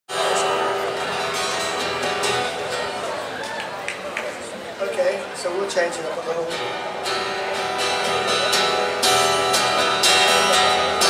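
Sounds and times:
audience noise: 0:00.1 - 0:11.0.

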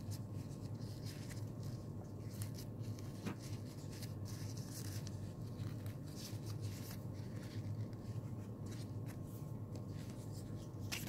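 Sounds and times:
fabric rustling: 0:00.0 - 0:11.0
steady low hum: 0:00.0 - 0:11.0.

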